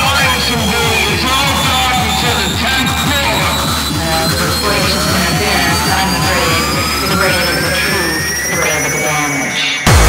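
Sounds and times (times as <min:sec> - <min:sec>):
rising synth sweep: 0:00.0 - 0:10.0.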